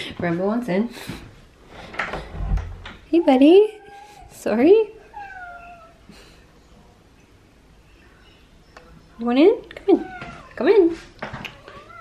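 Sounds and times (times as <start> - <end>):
cat meowing: 5.0 - 6.0, 10.0 - 10.6, 11.5 - 12.0.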